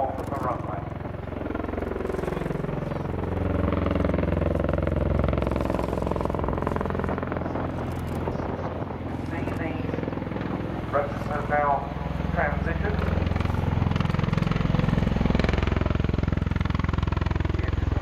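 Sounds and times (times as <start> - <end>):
aircraft rotor and turbine drone: 0.0 - 18.0.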